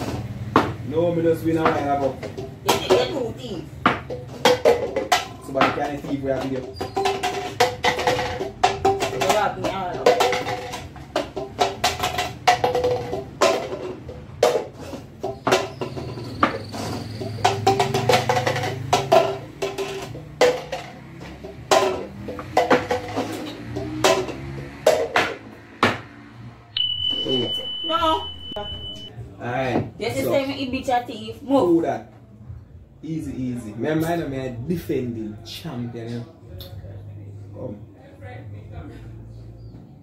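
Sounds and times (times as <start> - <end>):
plastic cups knocking on wooden table: 0.0 - 26.3
short high beep: 26.8 - 29.1.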